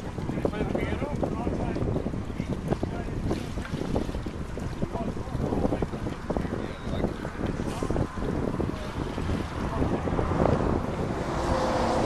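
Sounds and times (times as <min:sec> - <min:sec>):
water running into concrete channel: 0:00.0 - 0:12.0
wind buffeting microphone: 0:00.0 - 0:12.0.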